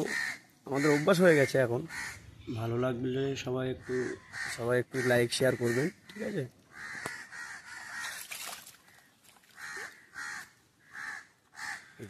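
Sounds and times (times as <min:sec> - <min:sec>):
crow cawing: 0:00.0 - 0:02.6, 0:03.7 - 0:12.0.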